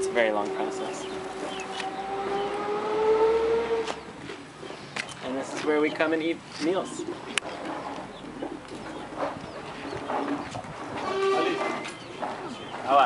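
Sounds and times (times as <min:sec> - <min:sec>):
birds calling: 0:00.0 - 0:13.0.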